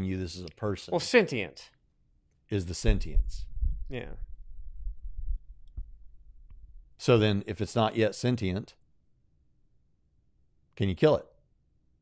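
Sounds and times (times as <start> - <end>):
microphone handling rumble: 2.8 - 6.9.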